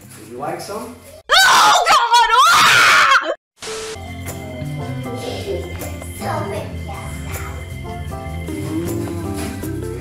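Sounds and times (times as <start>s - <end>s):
woman screaming: 1.3s - 3.4s.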